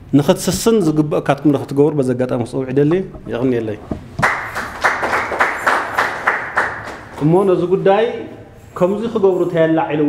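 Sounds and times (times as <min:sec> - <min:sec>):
audience applauding rhythmically: 0:04.2 - 0:07.4.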